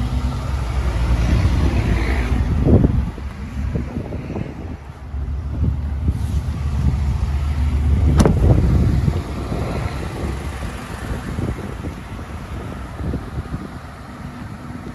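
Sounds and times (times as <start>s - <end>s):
wind rumble on microphone: 0.0s - 14.9s
car door slamming shut: 8.1s - 8.6s.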